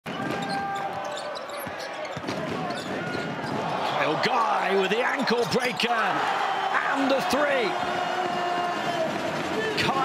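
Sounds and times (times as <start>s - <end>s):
arena crowd noise: 0.0s - 10.0s
sneaker squeaks: 0.2s - 3.7s.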